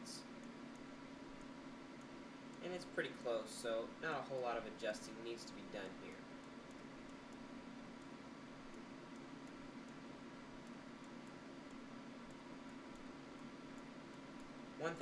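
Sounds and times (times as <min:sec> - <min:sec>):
low hum and hiss: 0:00.0 - 0:15.0
computer mouse clicks: 0:05.5 - 0:10.0, 0:10.6 - 0:14.6.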